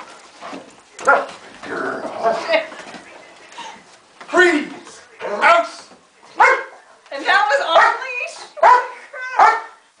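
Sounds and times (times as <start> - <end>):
dog barking: 1.0 - 1.3, 6.4 - 6.8, 7.7 - 9.8.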